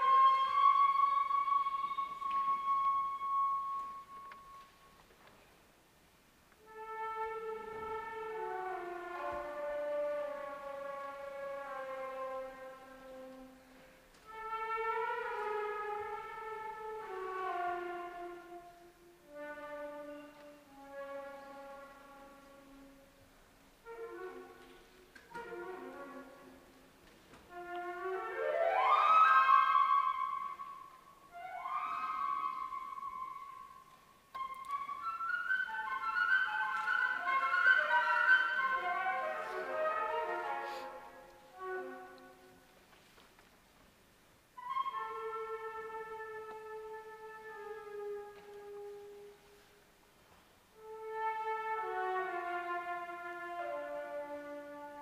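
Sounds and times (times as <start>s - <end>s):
flute holding long high note: 0.0s - 4.8s, 27.5s - 42.5s
flute: 0.0s - 5.1s, 6.5s - 42.7s, 44.5s - 49.8s, 50.7s - 55.0s
cello: 6.5s - 42.8s, 50.8s - 55.0s.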